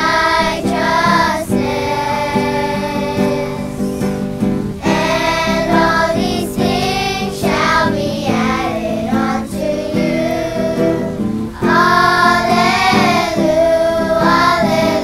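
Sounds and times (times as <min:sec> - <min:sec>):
children singing together: 0:00.0 - 0:15.0
guitar accompaniment: 0:00.0 - 0:15.0.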